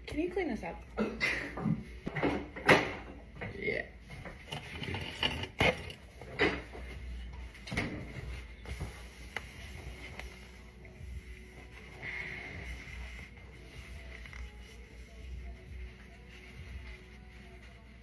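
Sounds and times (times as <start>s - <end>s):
faint background music: 0.0s - 18.0s
paper towels knocking and rustling: 6.0s - 18.0s.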